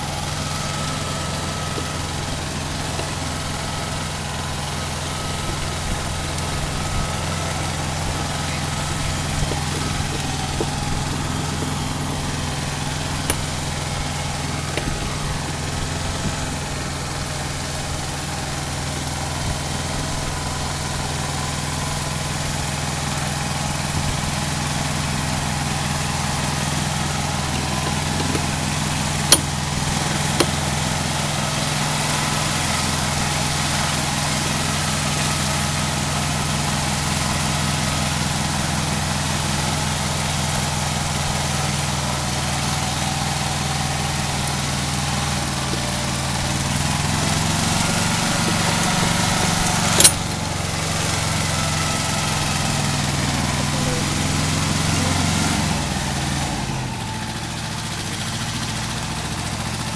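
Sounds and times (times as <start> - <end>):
diesel tractor engine running: 0.0 - 59.9
sharp knocks: 27.5 - 30.8.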